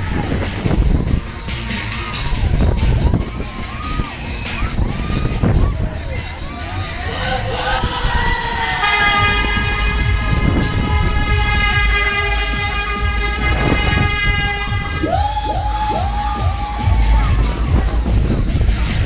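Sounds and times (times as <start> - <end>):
low rumble of fairground ride: 0.0 - 19.0
long horn blast: 8.4 - 15.2
rising siren whoops: 14.7 - 17.5.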